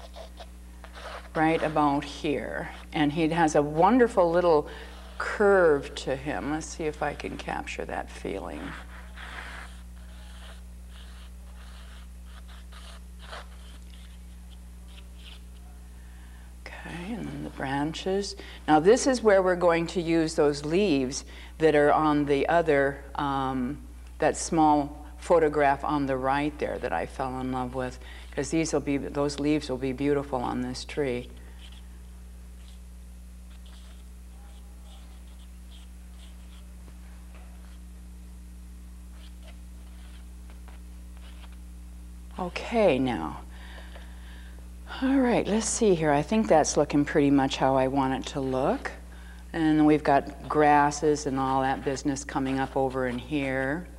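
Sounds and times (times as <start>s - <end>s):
stick scratching on canvas: 0.0s - 7.5s, 8.3s - 15.6s, 33.5s - 36.7s, 39.1s - 41.6s
low electrical hum: 0.0s - 53.9s.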